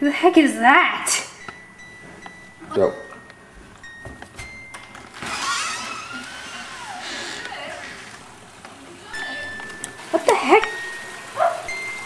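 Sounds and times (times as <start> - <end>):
footsteps: 1.5 - 12.0
door creaking: 4.4 - 8.7.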